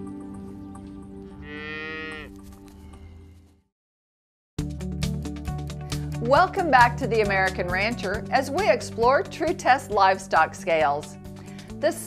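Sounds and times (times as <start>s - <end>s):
soft background music: 0.0s - 3.4s, 5.0s - 12.0s
calf mooing: 1.4s - 3.4s.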